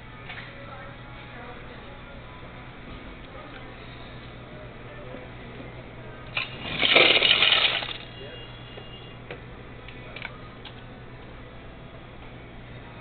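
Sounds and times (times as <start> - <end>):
steady low hum: 0.0 - 13.0
soda fountain dispensing burst: 6.4 - 8.2.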